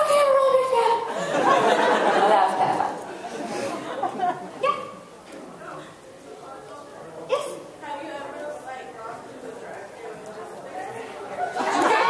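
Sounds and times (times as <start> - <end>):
indistinct speech in a hall: 0.0 - 12.0.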